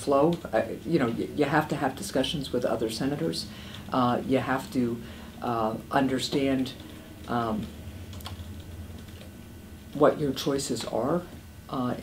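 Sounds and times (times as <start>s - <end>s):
low room hum: 0.0s - 12.0s
computer keyboard typing: 6.2s - 11.1s.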